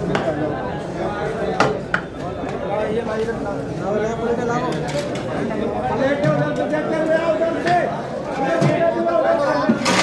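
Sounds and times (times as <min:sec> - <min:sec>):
voices: 0:00.0 - 0:10.0.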